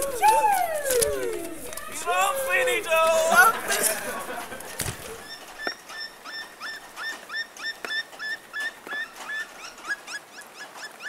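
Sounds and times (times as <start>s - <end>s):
faint clicks: 0.0s - 2.7s.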